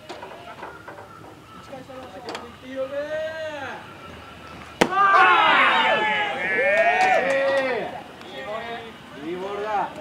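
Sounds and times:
baseball bat hitting ball: 4.8 - 5.3.

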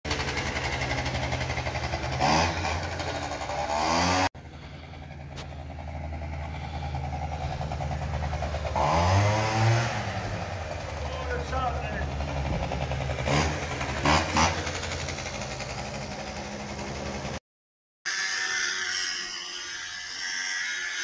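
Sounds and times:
scooter engine buzzing and revving: 0.1 - 17.4.

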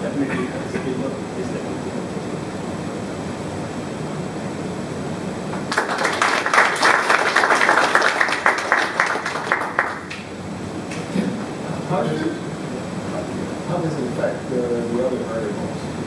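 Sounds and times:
low room noise: 0.0 - 16.0
audience applauding: 5.5 - 10.3.

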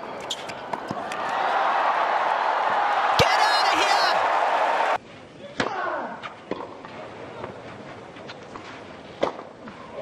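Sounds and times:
crowd cheering and applauding: 1.0 - 5.0.

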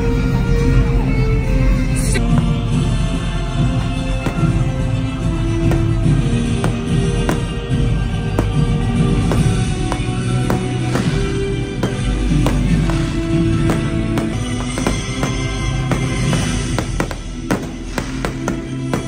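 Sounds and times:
loud show music: 0.0 - 19.0
fireworks popping and crackling: 4.0 - 19.0.

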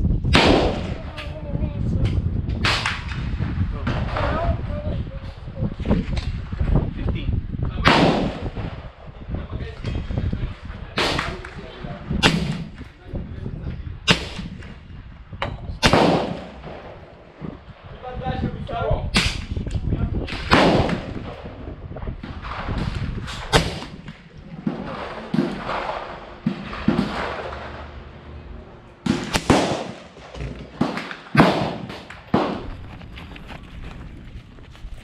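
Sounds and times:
rifle shots: 0.3 - 1.0, 7.8 - 8.8, 12.2 - 12.8, 14.1 - 14.6, 15.8 - 17.1, 20.2 - 21.5, 22.2 - 28.0, 29.0 - 32.8.

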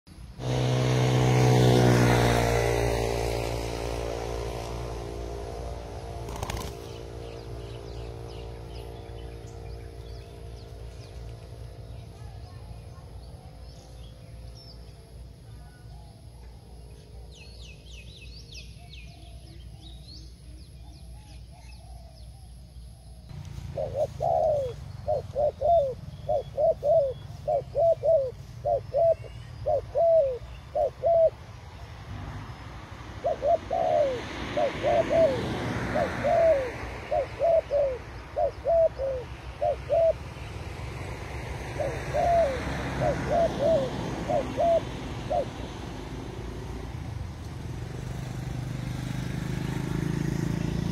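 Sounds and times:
doves cooing: 6.2 - 7.2, 23.6 - 31.6, 33.1 - 40.8, 41.4 - 47.1
small bird chirping: 6.3 - 32.0.

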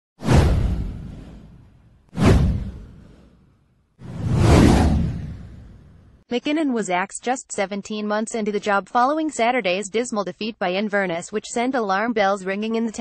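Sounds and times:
whoosh with deep rumble: 0.2 - 6.2.

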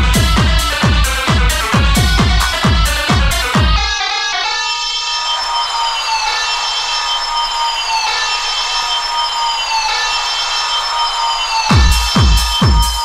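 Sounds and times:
sustained high synth chords: 0.0 - 13.0.

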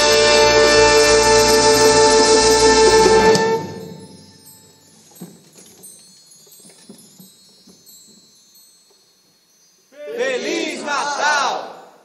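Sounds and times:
shimmering chimes: 1.2 - 10.0.

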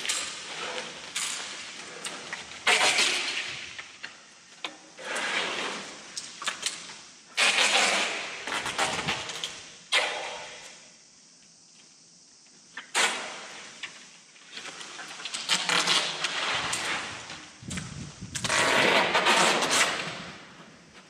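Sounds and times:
branches scraping across floor: 5.0 - 6.0, 14.5 - 19.9.

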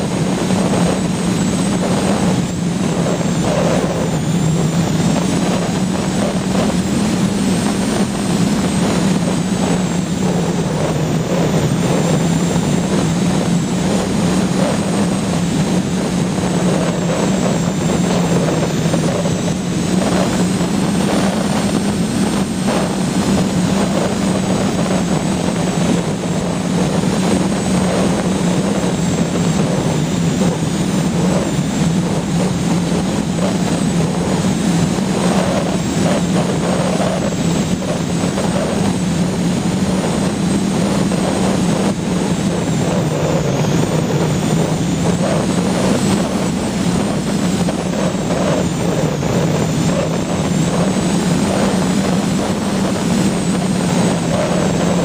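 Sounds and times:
airflow rushing over microphone: 0.0 - 55.0
electric motor and propeller drone: 0.0 - 55.0.

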